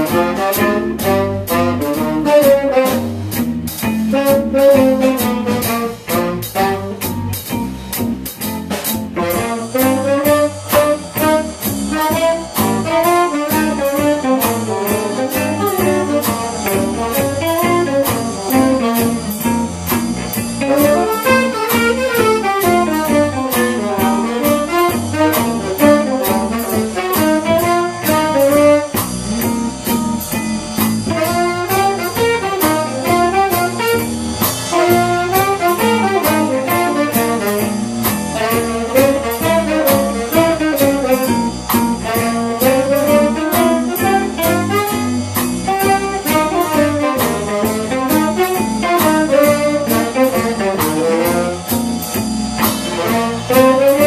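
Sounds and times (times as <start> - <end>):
tenor saxophone running lines: 0.0 - 3.2, 4.1 - 7.4, 9.1 - 54.0
drum kit steady beat: 0.0 - 54.0.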